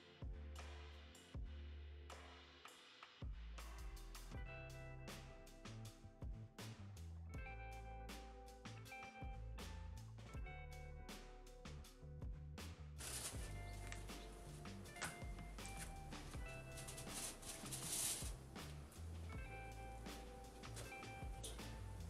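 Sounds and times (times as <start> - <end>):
quiet background music: 0.0 - 22.0.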